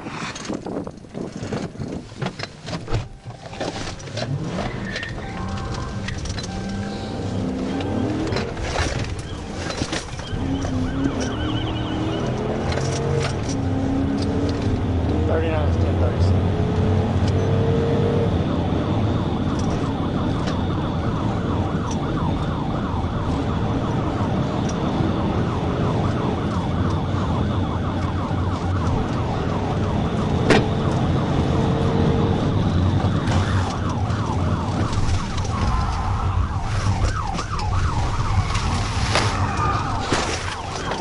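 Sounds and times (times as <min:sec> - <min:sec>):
car engine and road noise: 0:00.0 - 0:41.0
police siren yelping: 0:03.0 - 0:41.0.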